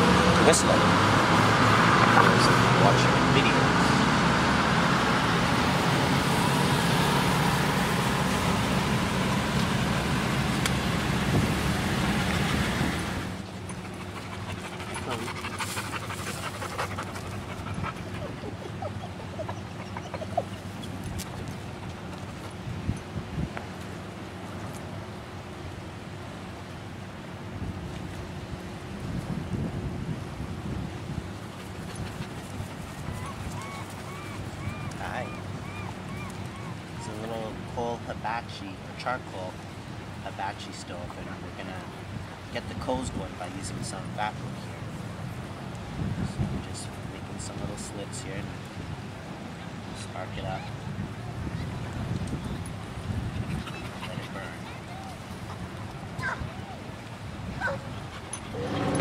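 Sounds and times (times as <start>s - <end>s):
road traffic noise: 0.0s - 59.0s.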